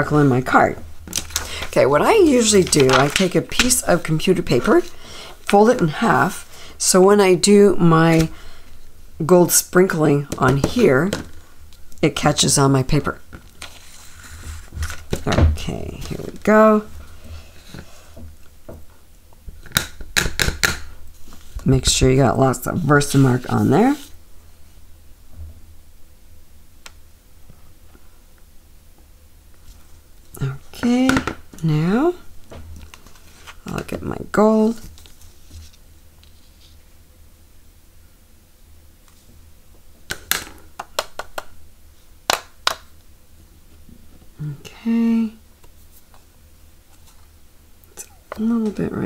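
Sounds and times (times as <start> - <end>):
plastic items rustling: 1.0 - 6.0.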